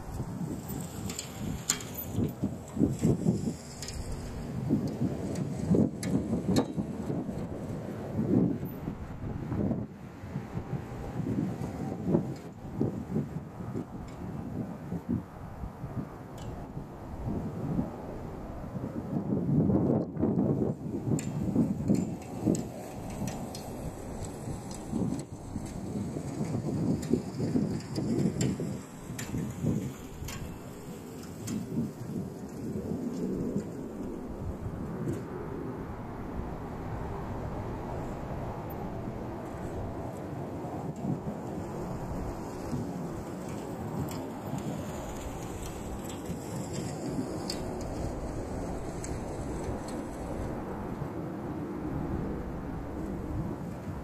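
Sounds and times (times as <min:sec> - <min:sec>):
gusty wind buffeting microphone: 0:00.0 - 0:54.0.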